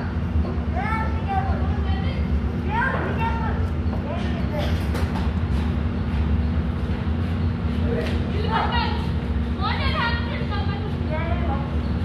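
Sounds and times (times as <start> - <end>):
indistinct voices talking: 0.0 - 6.8, 7.4 - 12.0
low rumble and hum: 0.0 - 12.0.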